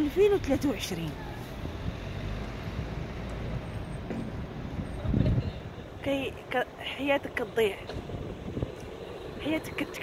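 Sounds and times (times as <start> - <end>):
road traffic rumble: 0.0 - 10.0
wind buffeting microphone: 4.3 - 6.4, 7.2 - 10.0.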